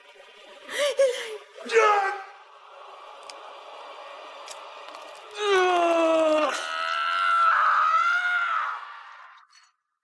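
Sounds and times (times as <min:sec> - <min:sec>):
man screaming: 0:05.4 - 0:09.3.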